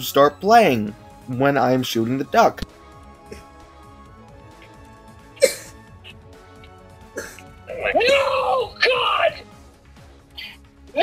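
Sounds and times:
low background music: 0.0s - 11.0s
man screaming: 7.7s - 9.4s.

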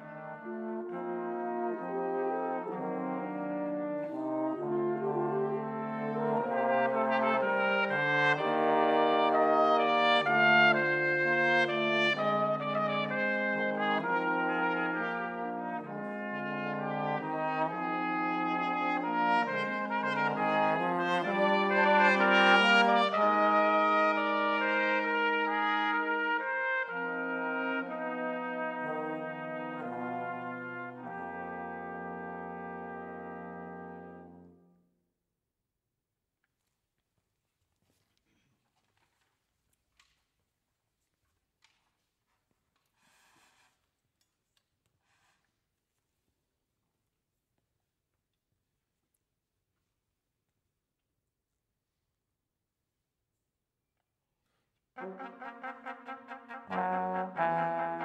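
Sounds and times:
brass quintet playing chords: 0.0s - 34.8s, 55.0s - 58.0s.

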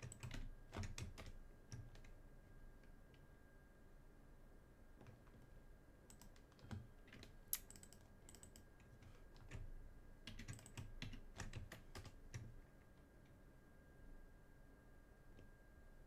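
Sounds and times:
computer keyboard typing: 0.0s - 2.2s, 6.1s - 12.6s.

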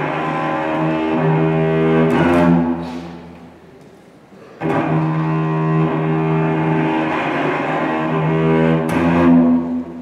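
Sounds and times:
cello bowing low notes: 0.0s - 3.7s, 4.4s - 10.0s.

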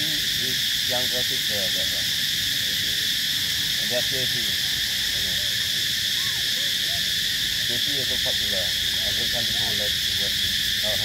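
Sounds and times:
high-pitched insect drone: 0.0s - 11.0s.

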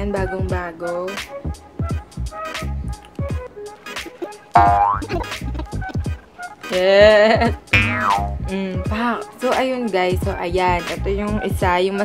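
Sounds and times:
music with deep beat: 4.0s - 6.2s.

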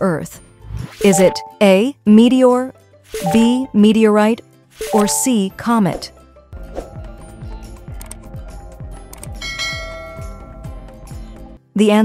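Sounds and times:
light background music: 0.0s - 12.0s
bell-like chime: 9.4s - 10.6s.

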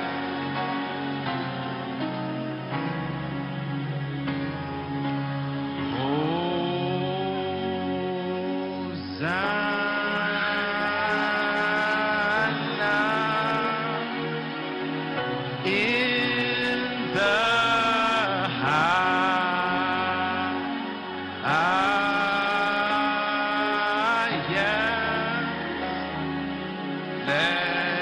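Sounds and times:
background music: 0.0s - 28.0s
man singing a long note: 5.8s - 14.8s, 15.5s - 26.2s, 27.2s - 28.0s
person singing a long note: 5.8s - 14.9s.

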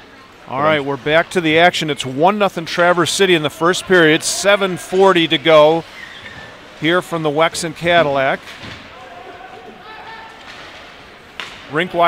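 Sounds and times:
distant crowd chatter: 0.0s - 12.0s.

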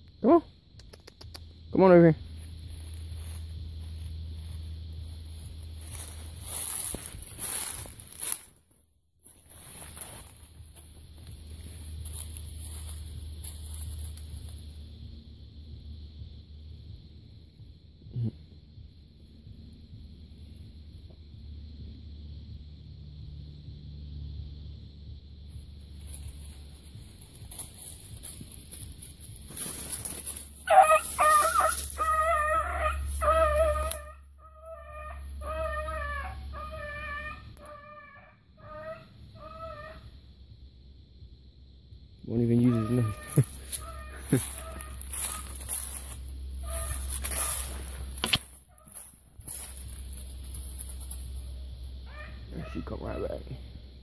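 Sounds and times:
short pitched animal calls: 30.7s - 40.2s, 42.6s - 46.0s, 46.6s - 49.0s.

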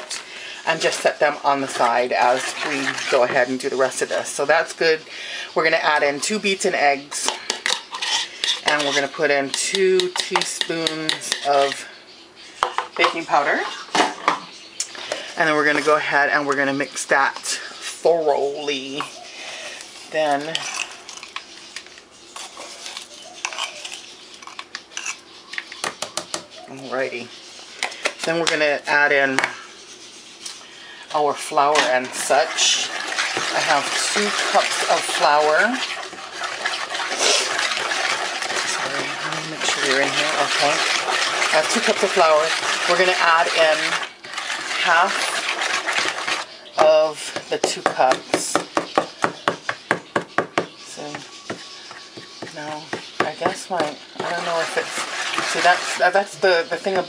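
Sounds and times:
spoon stirring wet batter: 0.0s - 12.0s, 12.6s - 14.1s, 14.8s - 57.0s
plastic spoon scraping and clicking: 20.4s - 26.1s.

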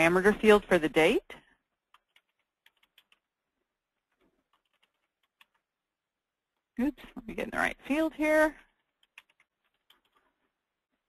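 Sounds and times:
computer keyboard typing: 1.8s - 5.8s, 8.6s - 10.6s.

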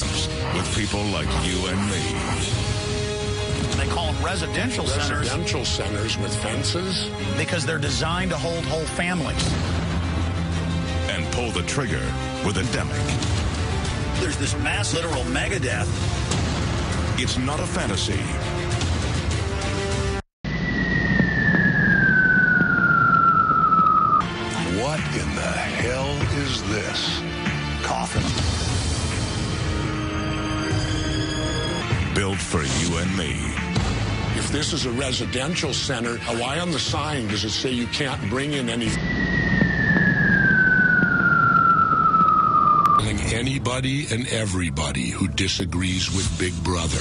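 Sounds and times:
low rumbling noise: 20.5s - 24.2s, 38.9s - 44.1s
high tone sliding down: 20.5s - 24.3s, 38.9s - 43.1s.

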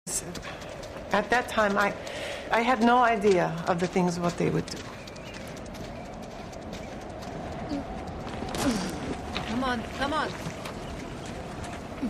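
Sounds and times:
steady background noise: 0.1s - 12.0s.

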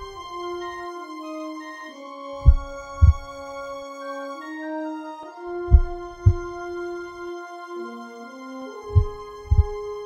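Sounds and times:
soft background music: 0.0s - 10.0s
heartbeat thumps: 2.4s - 3.3s, 5.7s - 6.6s, 8.9s - 9.8s.

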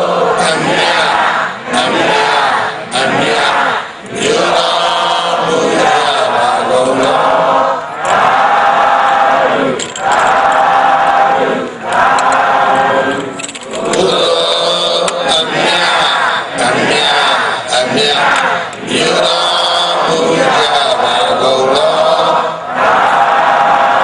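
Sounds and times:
crowd chanting in unison: 0.0s - 24.0s.

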